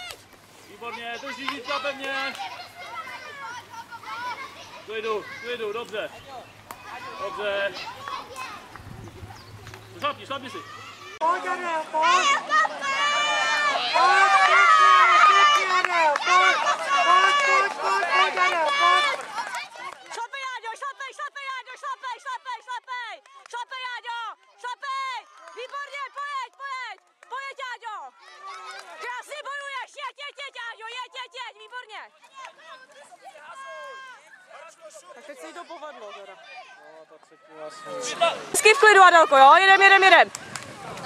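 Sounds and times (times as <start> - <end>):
spectators shouting: 10.0 - 26.8, 37.4 - 41.0.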